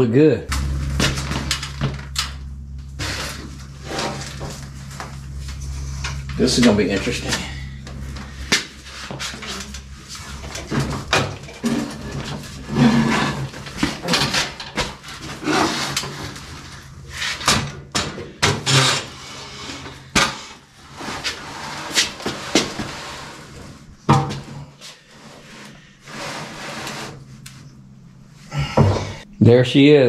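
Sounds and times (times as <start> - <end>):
steady low hum: 0.0 - 30.0
hand truck rolling on concrete: 0.5 - 18.0
metal scraping and rattling: 0.5 - 27.6.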